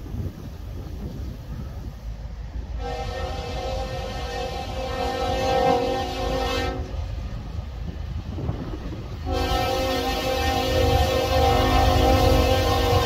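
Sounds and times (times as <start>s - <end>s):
low train rumble: 0.0s - 13.0s
locomotive air horn: 2.8s - 7.2s, 9.2s - 13.0s.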